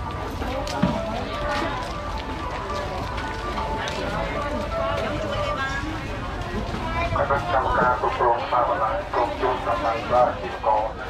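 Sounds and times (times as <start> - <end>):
chatter of vendors and shoppers: 0.0 - 11.0
music playing: 0.1 - 6.4.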